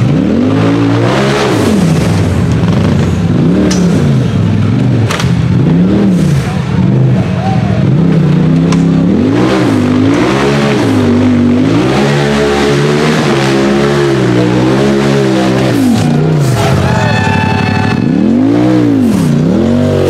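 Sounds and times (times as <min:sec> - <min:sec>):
engine revving under load: 0:00.0 - 0:20.0.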